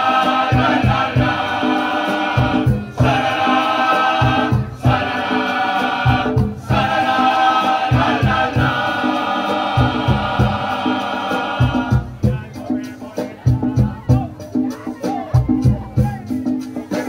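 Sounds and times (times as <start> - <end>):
men's choir singing loudly: 0.0 - 14.4
low drum beat: 0.0 - 17.0.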